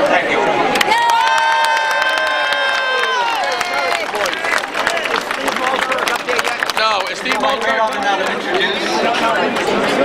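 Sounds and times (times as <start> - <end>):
crowd shouting: 0.1 - 6.1
scattered clapping: 0.7 - 10.0.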